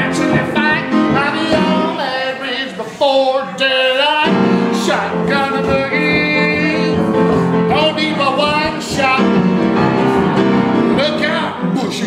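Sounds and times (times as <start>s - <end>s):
boogie-woogie piano: 0.0s - 2.7s, 3.6s - 12.0s
man singing: 0.0s - 12.0s.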